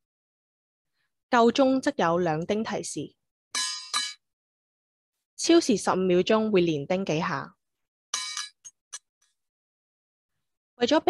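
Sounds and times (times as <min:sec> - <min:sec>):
desk call bell dings: 0:03.6 - 0:04.2, 0:08.2 - 0:08.7.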